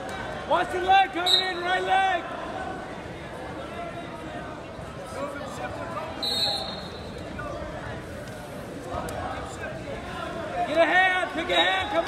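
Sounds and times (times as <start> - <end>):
crowd chatter echoing: 0.0 - 12.0.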